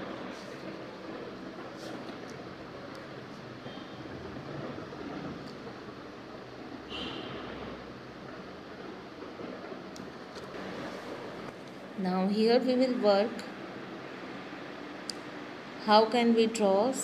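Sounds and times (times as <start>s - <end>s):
steady background hum: 0.0s - 17.0s.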